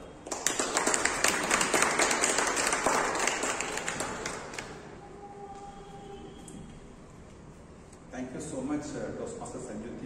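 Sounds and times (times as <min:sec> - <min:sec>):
audience applause: 0:00.3 - 0:04.8.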